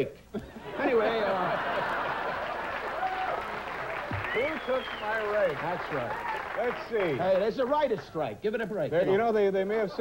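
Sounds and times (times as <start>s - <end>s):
audience applauding: 1.1s - 8.1s.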